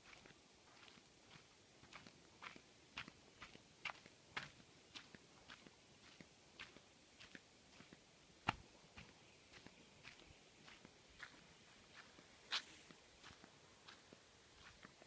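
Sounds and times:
faint footsteps: 0.0 - 15.0.

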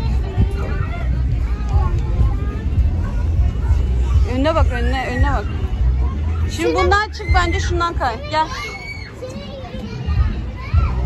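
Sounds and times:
children's voices and chatter: 0.0 - 11.0.

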